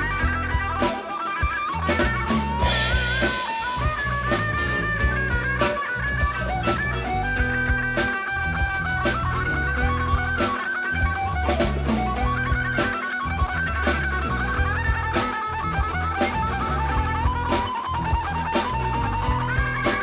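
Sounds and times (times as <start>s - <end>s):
acoustic rhythm guitar: 0.0s - 20.0s
drum kit steady beat: 0.0s - 20.0s
guitar melody: 0.0s - 20.0s
plucked upright bass: 1.8s - 10.4s, 11.0s - 19.9s.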